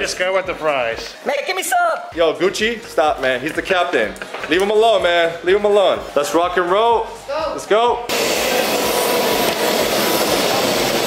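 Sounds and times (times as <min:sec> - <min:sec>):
loud steady rushing noise: 0:08.1 - 0:11.0.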